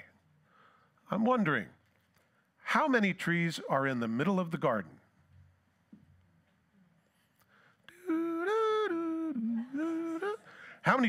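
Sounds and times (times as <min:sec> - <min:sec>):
man humming: 0:07.9 - 0:10.6.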